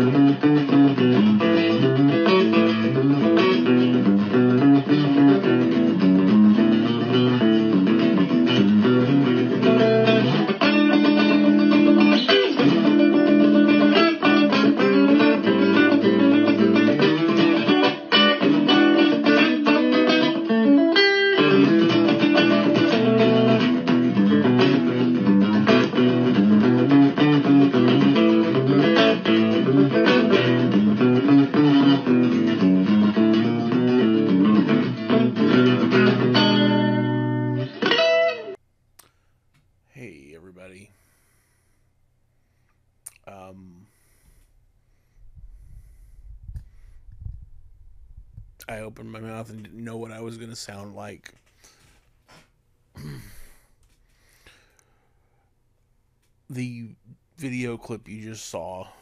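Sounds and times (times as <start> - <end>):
electric guitar through amplifier: 0.0 - 38.6.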